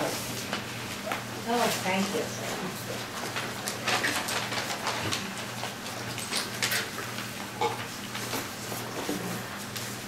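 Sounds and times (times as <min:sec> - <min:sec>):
rustling of people moving: 0:00.0 - 0:10.0.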